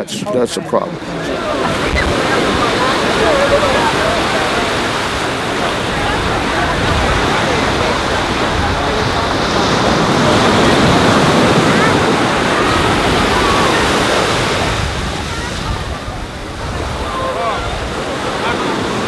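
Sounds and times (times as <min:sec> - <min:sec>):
surf washing up on beach: 0:00.6 - 0:19.0
wind buffeting microphone: 0:00.9 - 0:19.0.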